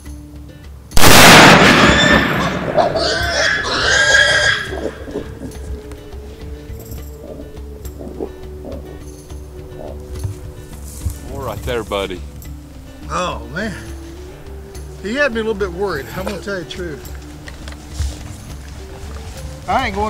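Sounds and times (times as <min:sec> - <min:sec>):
background music: 0:00.0 - 0:20.0
loud rifle shot: 0:01.0 - 0:03.0
boar squealing: 0:01.8 - 0:10.2.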